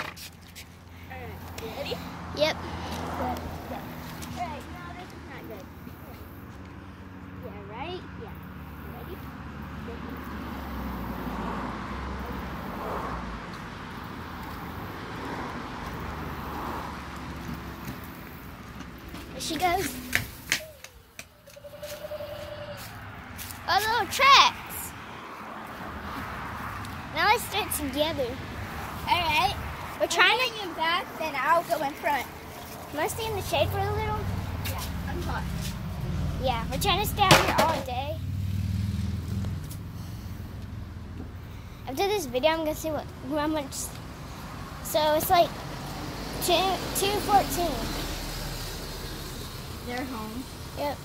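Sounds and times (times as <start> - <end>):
skateboard wheels rolling on concrete: 0.0 - 6.8, 10.0 - 39.9
vehicle engine hum: 0.0 - 51.0
child's high voice: 19.4 - 20.0, 23.6 - 25.0, 29.1 - 32.3, 32.9 - 35.5, 46.4 - 48.1, 49.9 - 51.0.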